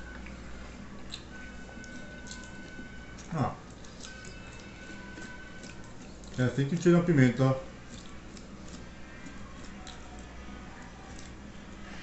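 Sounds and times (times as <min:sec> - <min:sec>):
soft squishing: 0:00.0 - 0:12.0
steady low hum: 0:00.0 - 0:12.0.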